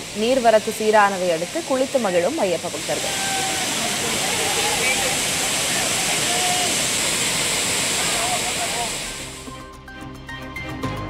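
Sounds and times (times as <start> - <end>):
waterfall and rushing river: 0.0 - 9.5
faint voices: 2.7 - 7.0, 7.9 - 9.1.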